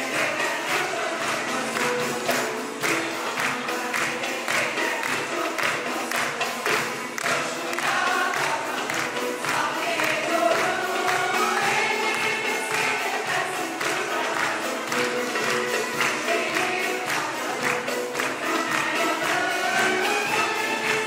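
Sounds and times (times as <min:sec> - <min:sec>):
choir singing: 0:00.0 - 0:21.0
instrumental ensemble: 0:00.0 - 0:21.0
steady percussion beat: 0:00.0 - 0:21.0.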